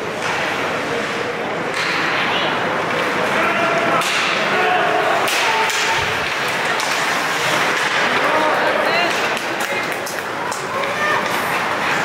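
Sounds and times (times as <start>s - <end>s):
skates scraping ice: 0.0s - 4.0s, 5.0s - 12.0s
scattered voices: 0.0s - 12.0s.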